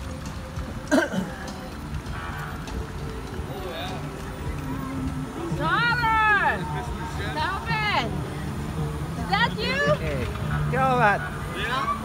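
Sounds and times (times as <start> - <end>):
vehicle engines humming: 0.0 - 12.0.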